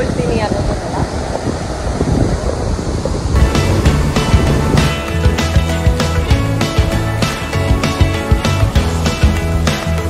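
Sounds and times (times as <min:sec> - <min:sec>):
sea surf washing in: 0:00.0 - 0:10.0
wind buffeting microphone: 0:00.0 - 0:10.0
background music with steady beat: 0:03.4 - 0:10.0.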